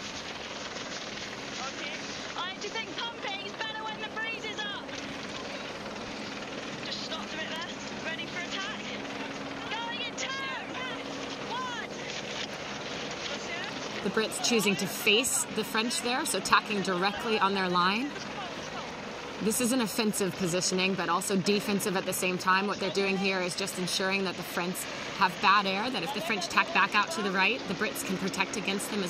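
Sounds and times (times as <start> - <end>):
low engine hum: 0.0 - 29.0
water noise: 0.0 - 29.0
wind: 0.0 - 29.0.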